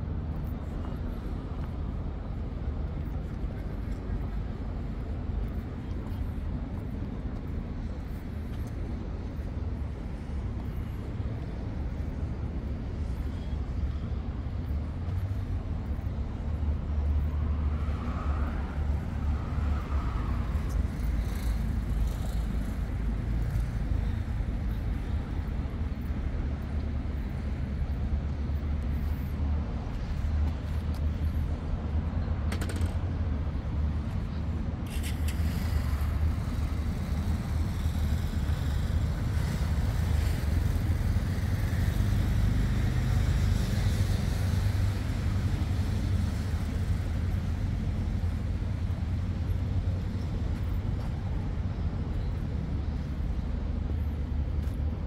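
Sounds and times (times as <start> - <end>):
road traffic rumble: 0.0 - 55.0.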